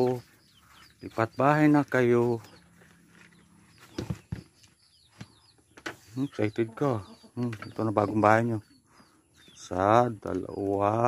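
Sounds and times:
faint bird chirps: 0.0 - 10.8.

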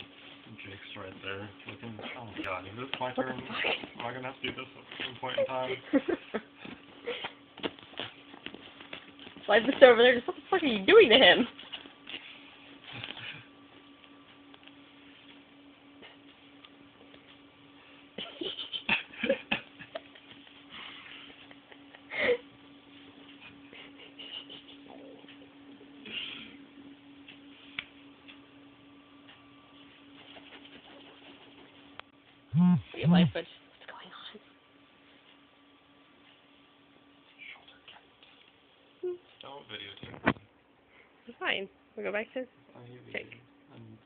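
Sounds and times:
faint steady hum: 0.0 - 44.0.

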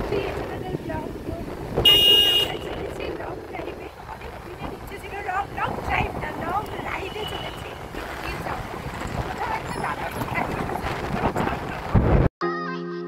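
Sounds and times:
woman talking: 0.0 - 1.5, 2.4 - 8.6, 9.3 - 10.9
motorbike road rumble: 0.0 - 12.3
wind buffeting microphone: 0.0 - 12.3.

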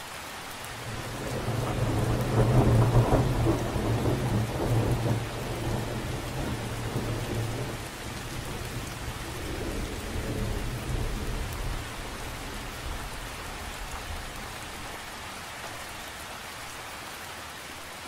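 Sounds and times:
steady rain: 0.0 - 18.0
thunder rolling: 0.8 - 14.4.

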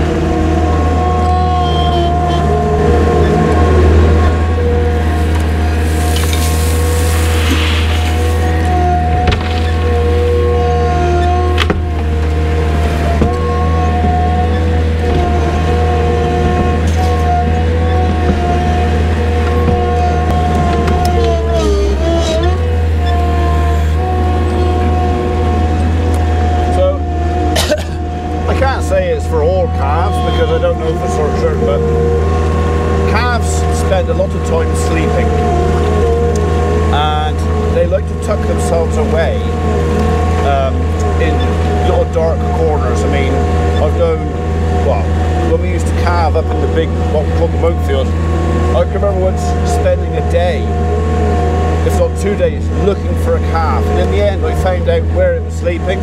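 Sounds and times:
diesel engine running with whine: 0.0 - 56.0.

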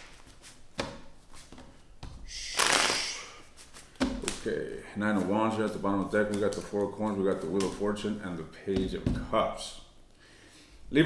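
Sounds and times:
cards being shuffled: 2.6 - 3.0, 6.0 - 8.0.

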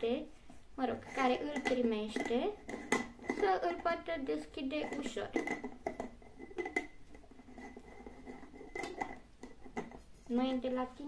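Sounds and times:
glass jar knocks and clicks: 1.5 - 3.4, 4.8 - 10.0.

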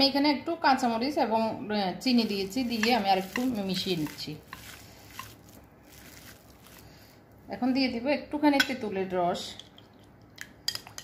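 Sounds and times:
woman's voice: 0.0 - 4.5, 7.5 - 9.6.

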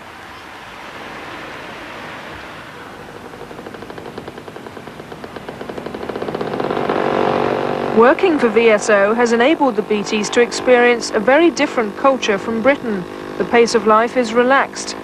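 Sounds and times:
small motorcycle engine approaching: 2.1 - 15.0.

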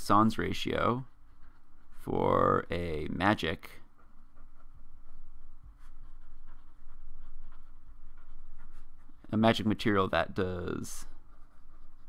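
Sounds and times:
marker writing on paper: 0.2 - 12.0.

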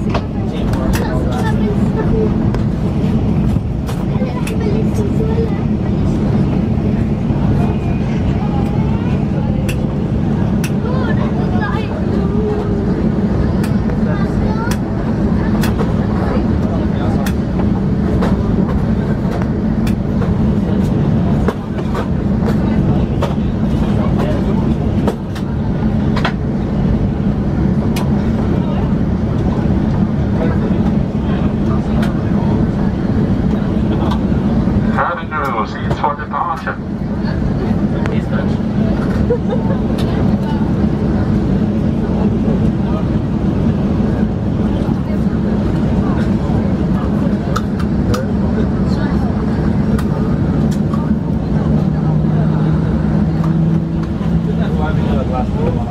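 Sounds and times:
jet engine hum: 0.0 - 55.9.

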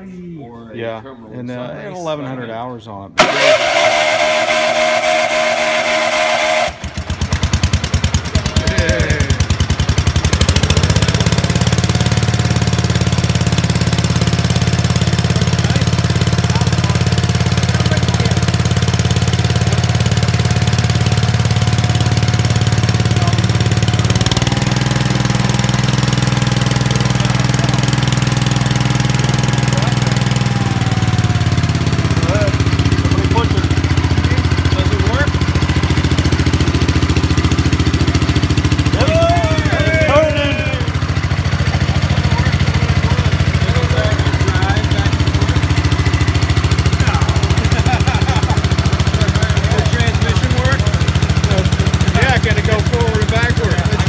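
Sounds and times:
engine running steadily: 3.2 - 54.0
starter cranking engine: 3.2 - 54.0.

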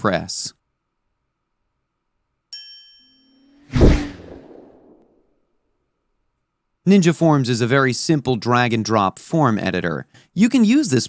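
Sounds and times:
bell-like ding: 2.5 - 3.5
whooshing hit: 3.6 - 5.0.

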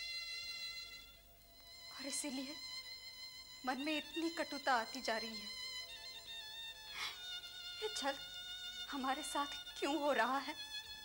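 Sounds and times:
woman speaking: 8.9 - 10.6.

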